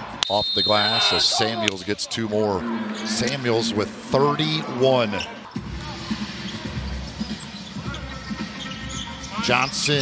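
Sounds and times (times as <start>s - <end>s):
soft arena music: 0.0s - 10.0s.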